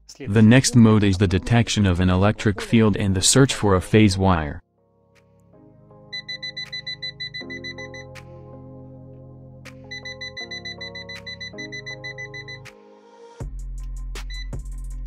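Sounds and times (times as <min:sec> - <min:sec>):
background music: 0:00.1 - 0:15.0.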